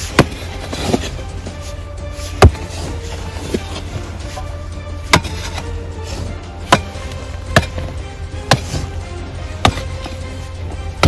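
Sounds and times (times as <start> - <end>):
background music: 0.0 - 11.0
tool striking hard ground: 0.0 - 11.0.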